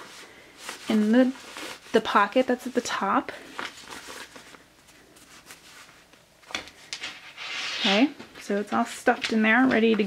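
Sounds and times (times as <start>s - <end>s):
cloth rustling: 0.0s - 10.0s.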